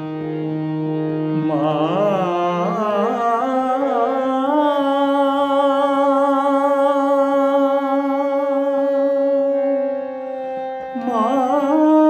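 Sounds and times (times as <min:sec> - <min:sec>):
man singing long note: 0:01.4 - 0:10.0, 0:10.9 - 0:12.0.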